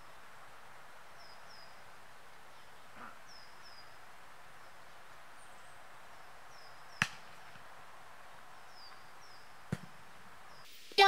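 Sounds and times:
small birds chirping: 0.0 - 10.8
soccer ball being kicked: 9.7 - 10.0.

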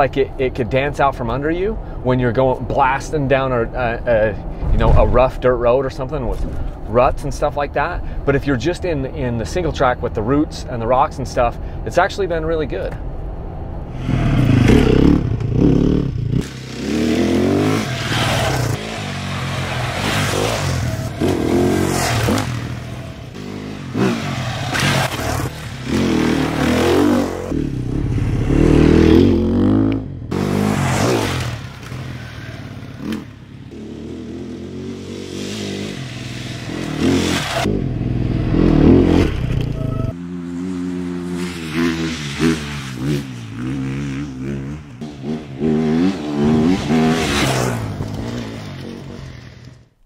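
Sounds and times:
dirt bike engines revving: 14.0 - 49.8.

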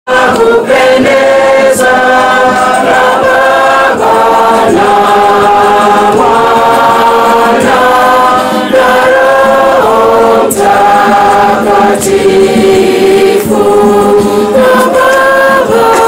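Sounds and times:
choir singing a hymn: 0.1 - 16.0.

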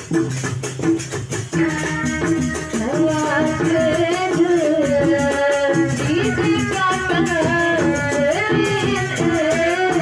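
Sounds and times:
hand drum: 0.0 - 10.0
woman singing through loudspeakers: 1.6 - 10.0.

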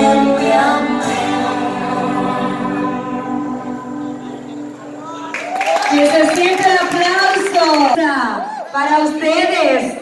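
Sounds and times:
song chord over loudspeaker: 0.0 - 5.3.

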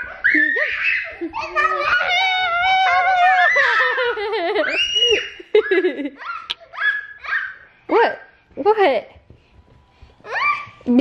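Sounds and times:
children laughing and squealing: 0.0 - 7.7.

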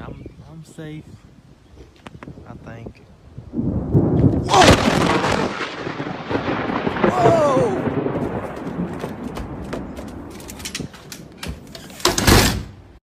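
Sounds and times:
thunderclap crack and rumble: 2.0 - 12.6
person crying out: 7.0 - 8.0.

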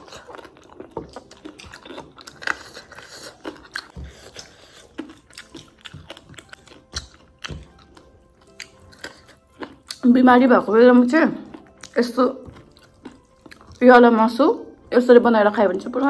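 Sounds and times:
chewing with soft clicks and smacks: 0.0 - 10.1, 11.4 - 14.0.

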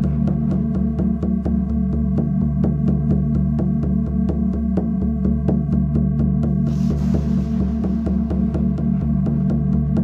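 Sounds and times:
throbbing electronic drone: 0.0 - 10.0.

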